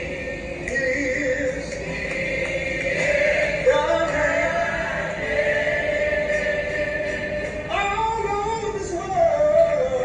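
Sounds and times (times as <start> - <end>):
gospel choir singing: 0.0 - 8.5.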